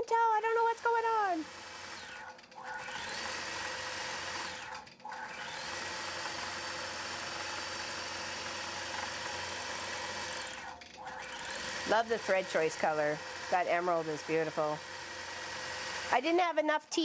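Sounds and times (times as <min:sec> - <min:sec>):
quilting machine stitching: 0:00.5 - 0:16.5.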